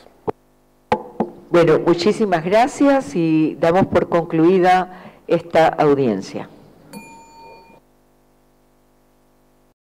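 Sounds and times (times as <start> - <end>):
faint steady hum: 0.0 - 9.8
bell-like ding: 6.9 - 7.8.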